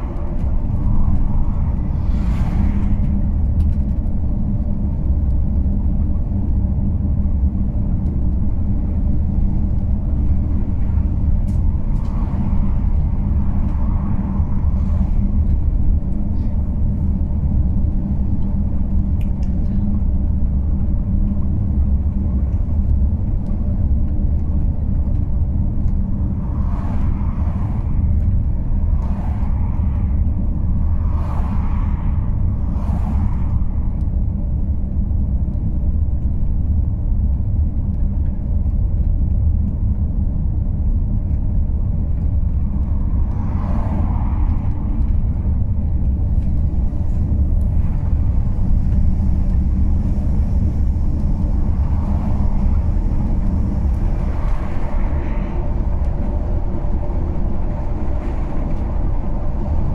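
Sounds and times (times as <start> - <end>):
oncoming cars passing: 0.0 - 36.0, 40.7 - 59.9
car driving on open road: 0.0 - 59.9.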